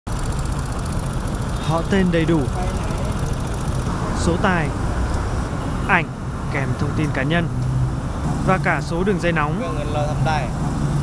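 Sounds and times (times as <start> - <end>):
street traffic rumble: 0.1 - 11.0.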